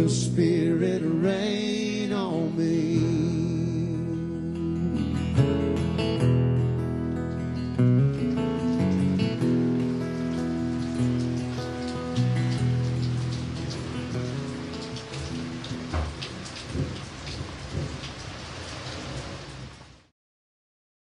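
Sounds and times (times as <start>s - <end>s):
acoustic guitar chord ringing: 0.0s - 15.9s
rain falling on concrete: 5.7s - 6.2s, 7.2s - 20.1s.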